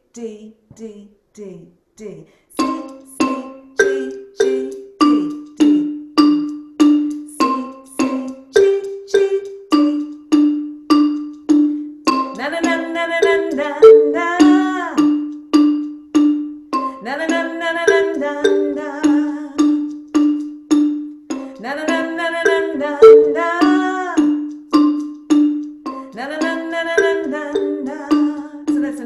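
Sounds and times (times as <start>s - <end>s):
person singing: 2.0s - 6.0s, 7.3s - 10.1s, 12.4s - 15.1s, 16.8s - 19.8s, 21.3s - 24.4s, 25.9s - 29.0s
xylophone struck with mallets: 2.6s - 29.0s.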